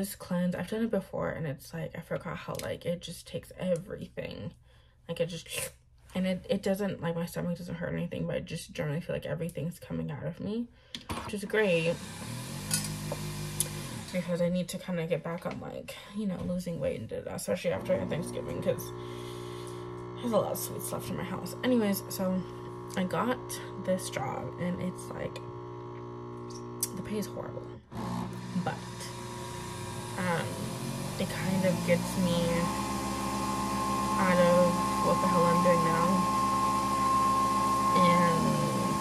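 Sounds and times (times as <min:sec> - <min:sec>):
coffee maker pump hum: 0:11.5 - 0:14.7, 0:17.5 - 0:39.0.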